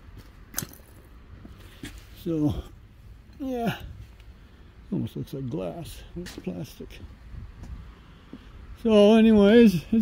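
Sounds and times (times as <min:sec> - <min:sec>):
footsteps on concrete: 0:00.0 - 0:02.7, 0:06.2 - 0:08.5.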